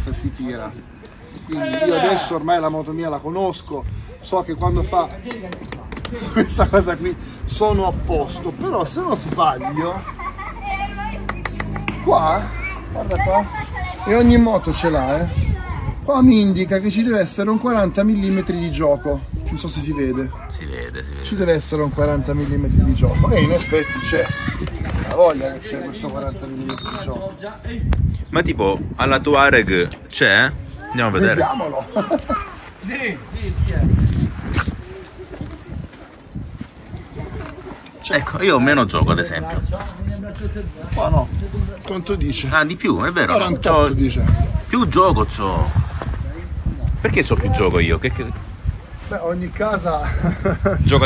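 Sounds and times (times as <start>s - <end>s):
faint children's voices: 7.5s - 26.1s, 30.5s - 38.9s, 46.0s - 49.1s.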